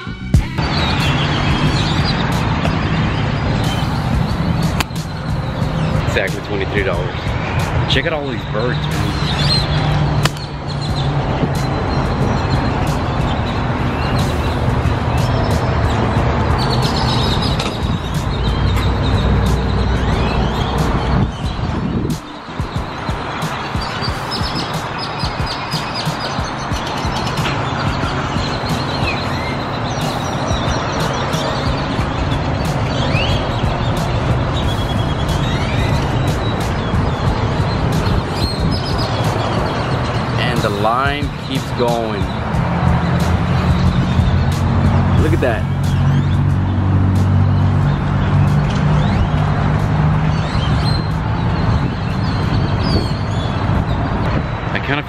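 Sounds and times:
background music: 0.0 - 55.0.

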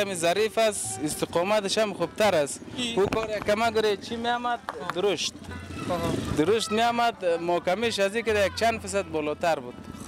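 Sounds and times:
men talking: 0.0 - 9.9
noisy street sound: 0.0 - 10.0.

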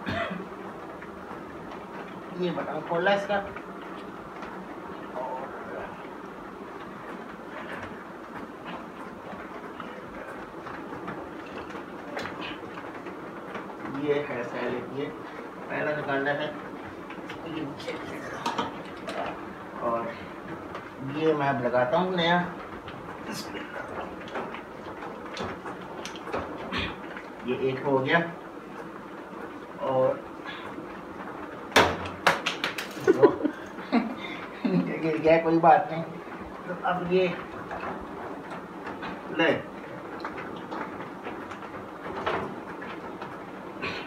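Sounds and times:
steady background hiss: 0.0 - 44.0.

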